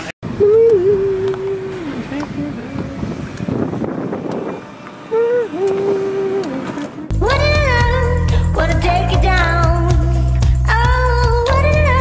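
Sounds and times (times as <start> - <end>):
car interior road noise: 0.0 - 10.9
voice holding long notes: 5.1 - 10.2.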